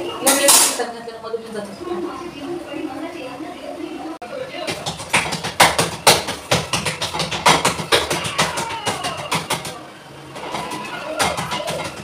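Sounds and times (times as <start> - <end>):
hands slapping dough: 4.6 - 9.8, 10.4 - 12.0.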